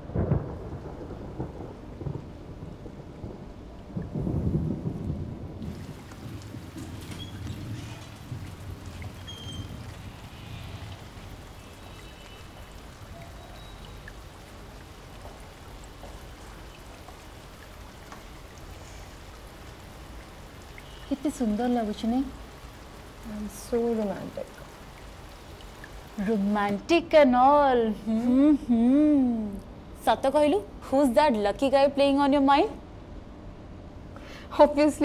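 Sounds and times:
thunder rumbling: 0:00.0 - 0:14.4
heavy rain patter: 0:00.0 - 0:32.8.

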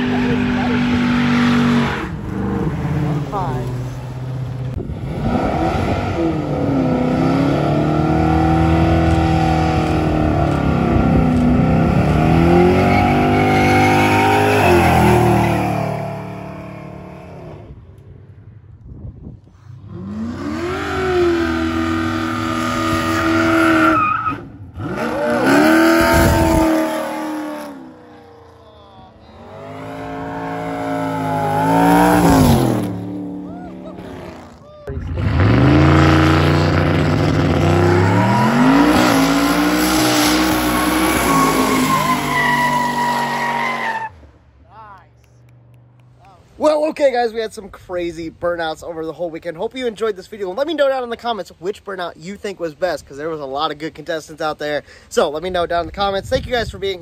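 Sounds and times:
car engine revving: 0:00.0 - 0:17.7, 0:19.8 - 0:44.1
tyres squealing: 0:12.7 - 0:15.8, 0:37.7 - 0:44.2.

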